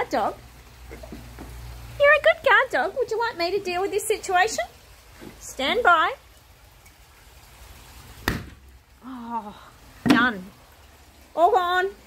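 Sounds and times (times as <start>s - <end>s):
sharp knock: 8.3s - 8.6s.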